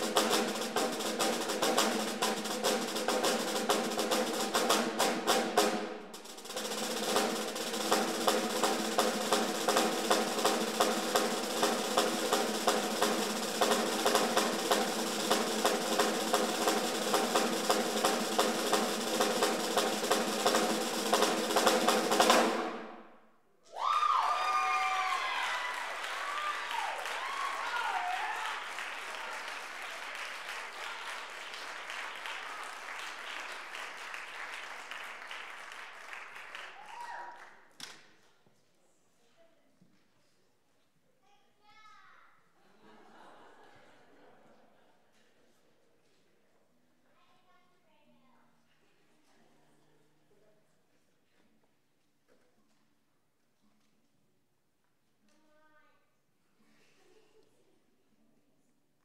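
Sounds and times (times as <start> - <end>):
snare drum rolls: 0.0 - 23.1
audience applause and cheers: 23.7 - 37.7.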